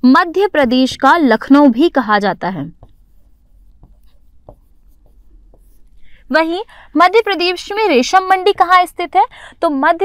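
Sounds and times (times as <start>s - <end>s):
marker pen on whiteboard: 0.0s - 10.0s
light taps: 2.8s - 6.0s.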